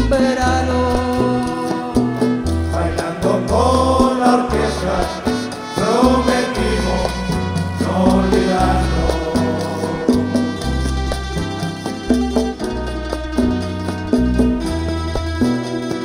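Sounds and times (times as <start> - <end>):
person singing melody: 0.0 - 12.9
bass line: 0.0 - 16.0
congas: 0.0 - 16.0
guitars and lutes playing: 0.0 - 16.0
scraped guiro: 0.0 - 16.0.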